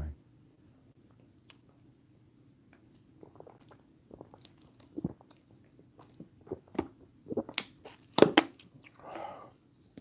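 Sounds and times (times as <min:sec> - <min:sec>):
person gulping soda: 0:03.2 - 0:09.0.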